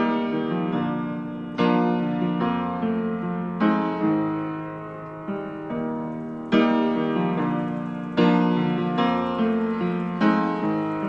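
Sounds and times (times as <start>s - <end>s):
piano chords ringing: 0.0s - 11.0s.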